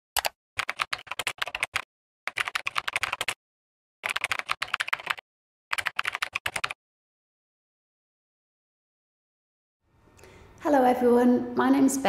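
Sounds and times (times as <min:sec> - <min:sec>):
keyboard typing clicks: 0:00.2 - 0:03.4, 0:04.0 - 0:06.8.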